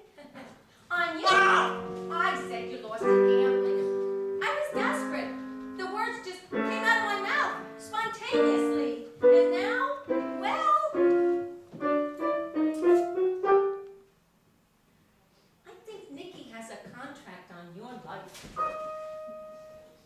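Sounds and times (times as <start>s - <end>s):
piano accompaniment: 1.2s - 14.1s, 18.6s - 20.0s
woman singing a show tune: 4.4s - 11.0s.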